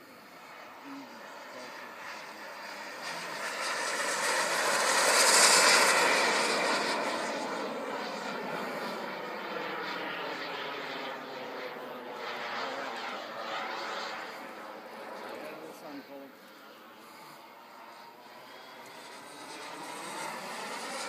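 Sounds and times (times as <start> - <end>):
model jet engine flying past: 0.0 - 21.0.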